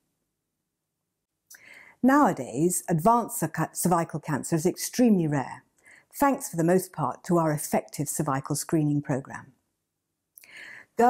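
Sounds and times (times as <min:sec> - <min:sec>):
woman's soft intake of breath: 0:01.6 - 0:02.0, 0:05.8 - 0:06.1, 0:10.4 - 0:11.0.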